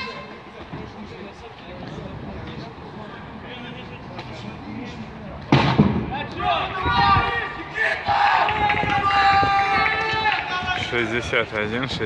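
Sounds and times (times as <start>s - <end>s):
sharp bang: 5.5s - 6.1s
people shouting long calls: 6.4s - 10.8s.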